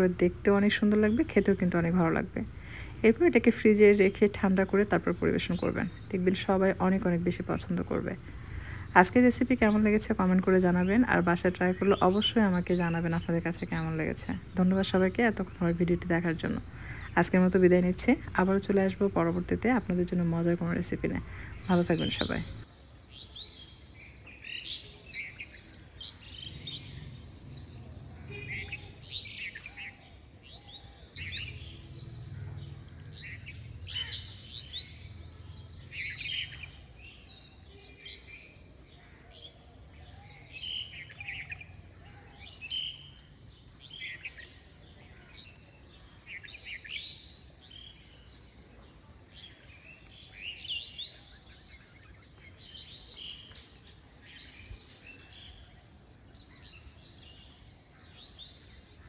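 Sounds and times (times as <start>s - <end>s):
small birds chirping: 0.0s - 59.0s.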